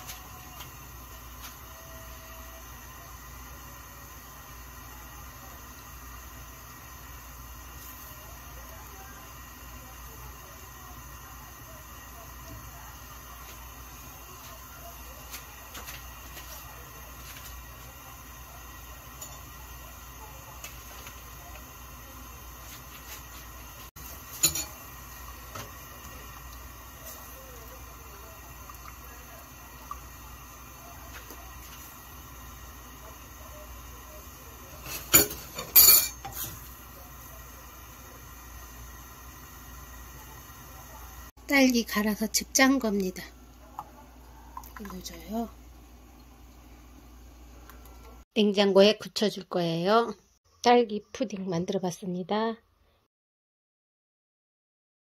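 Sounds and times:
utensils knocking on glass pot: 24.4s - 24.8s, 35.0s - 36.4s.

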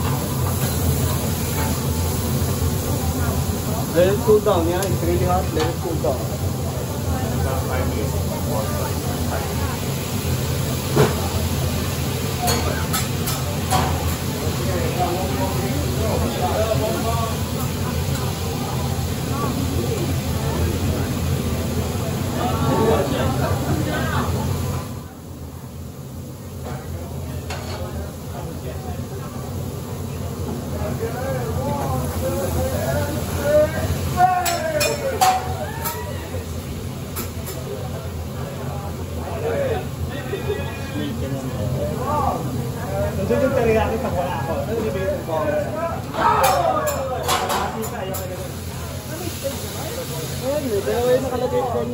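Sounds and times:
diners chattering: 0.0s - 51.9s
food sizzling on a hotplate: 0.0s - 51.9s.

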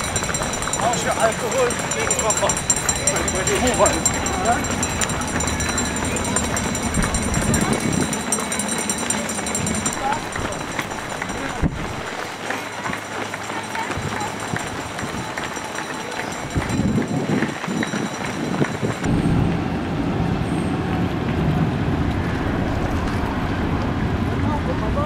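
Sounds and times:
steady low rumble: 0.0s - 12.2s, 18.9s - 25.0s
runners' footsteps on asphalt: 0.0s - 19.6s
street noise: 0.0s - 25.0s.

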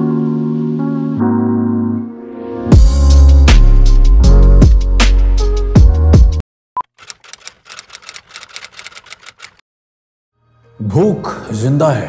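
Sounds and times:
electronic music with a beat: 2.7s - 6.4s
typewriter key clicks: 6.9s - 9.6s.

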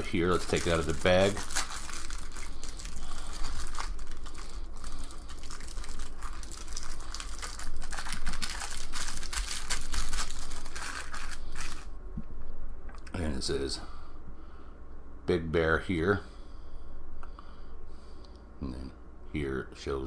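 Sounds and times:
plastic bag crinkling: 0.0s - 11.9s.

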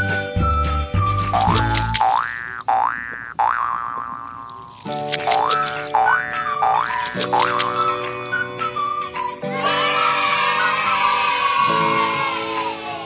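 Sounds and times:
children's background music: 0.0s - 2.4s, 4.7s - 13.0s.

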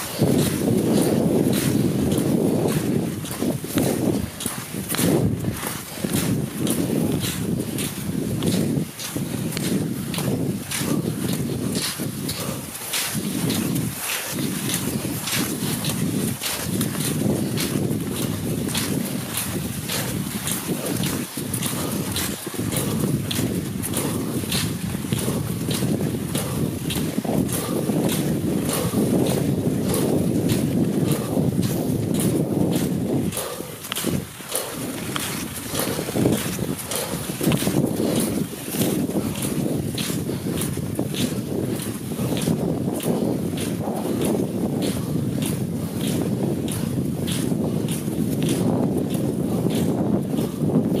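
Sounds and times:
wind buffeting microphone: 0.0s - 51.0s
skis and poles scraping snow: 10.3s - 23.2s.

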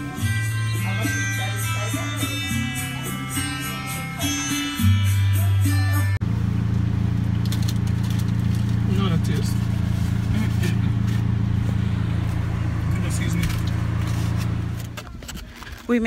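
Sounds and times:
car cabin drone: 6.2s - 15.2s.

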